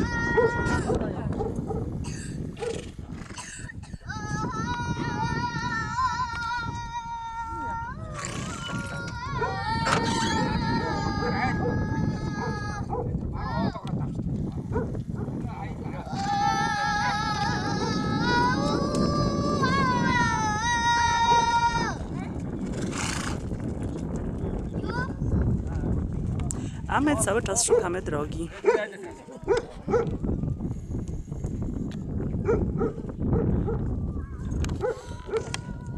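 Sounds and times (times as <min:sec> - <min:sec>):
wind rumble on microphone: 0:00.0 - 0:35.9
faint voices: 0:15.4 - 0:22.4, 0:24.7 - 0:30.9.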